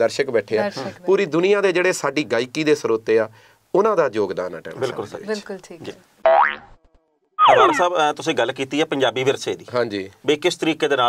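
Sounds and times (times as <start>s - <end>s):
cartoon boing sound effect: 6.2s - 6.8s, 7.4s - 7.9s
man speaking: 7.5s - 8.3s.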